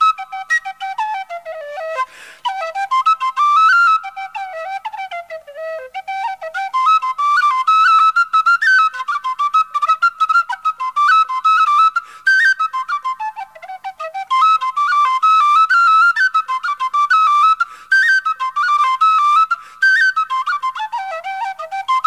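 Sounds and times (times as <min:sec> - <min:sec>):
tin whistle playing jig: 0:00.0 - 0:22.0.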